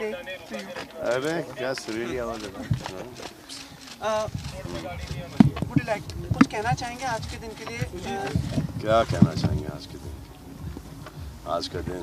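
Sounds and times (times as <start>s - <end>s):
people speaking: 0.0s - 10.2s, 11.4s - 12.0s
soft low knocks: 4.3s - 12.0s.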